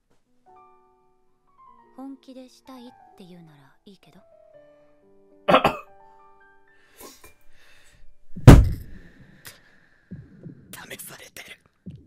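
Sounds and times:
cough-like burst: 5.5s - 5.8s
deep thump: 8.4s - 9.0s.

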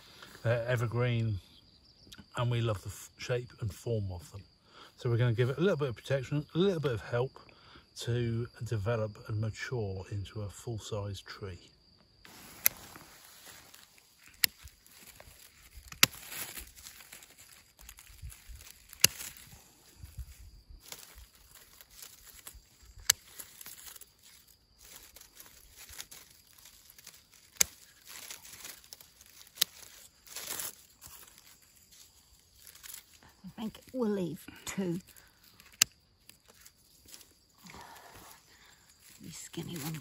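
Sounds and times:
rustling of dry grass: 12.2s - 40.0s
pruning shears snipping twigs: 12.3s - 19.6s, 20.8s - 33.2s, 34.9s - 37.4s.

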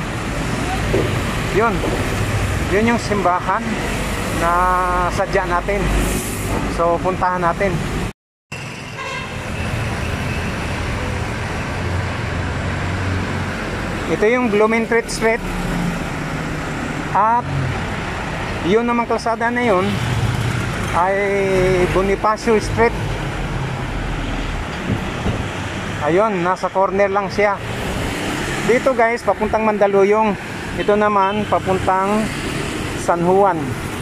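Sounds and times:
passing motor vehicles humming: 7.6s - 34.0s.

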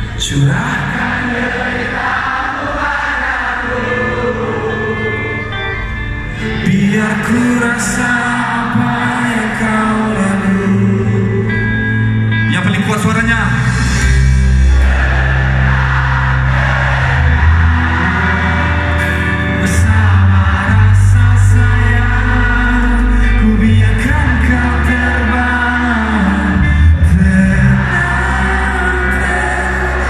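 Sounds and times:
crowd singing along: 0.0s - 12.3s, 13.5s - 30.0s
live band music over sound system: 0.0s - 30.0s
audience cheering: 14.6s - 23.0s.

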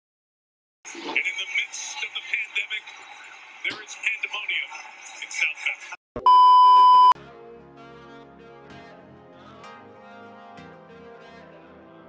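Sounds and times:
high test tone beep: 6.2s - 7.2s.

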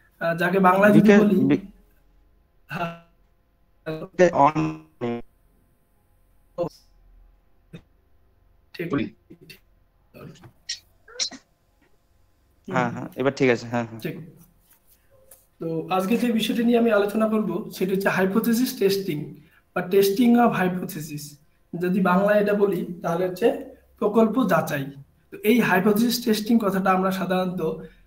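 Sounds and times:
man lecturing: 0.2s - 1.7s, 3.9s - 5.2s, 8.8s - 9.2s, 12.7s - 14.3s, 15.6s - 27.9s
man speaking: 0.2s - 1.7s, 3.9s - 5.2s, 8.8s - 9.5s, 12.7s - 14.3s, 15.6s - 27.8s
man's hesitation syllable: 0.7s - 1.7s, 4.0s - 5.2s, 8.8s - 9.4s.

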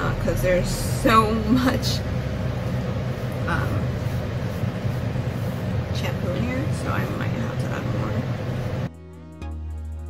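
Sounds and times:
low machine hum: 0.0s - 9.0s.

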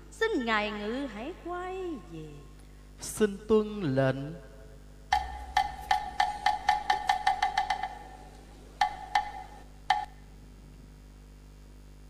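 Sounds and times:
wooden block knocks: 5.1s - 8.2s, 8.8s - 10.1s.

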